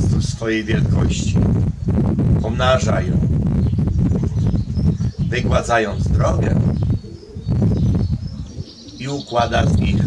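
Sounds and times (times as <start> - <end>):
dove cooing: 3.6 - 10.0.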